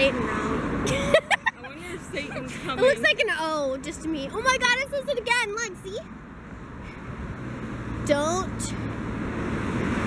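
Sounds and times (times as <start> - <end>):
vehicle approaching: 0.0 - 10.0.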